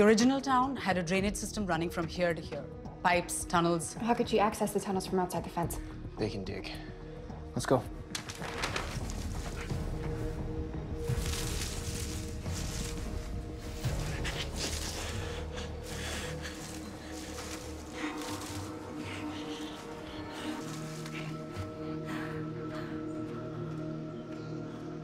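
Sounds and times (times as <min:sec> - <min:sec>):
movement through undergrowth: 0:08.2 - 0:22.2.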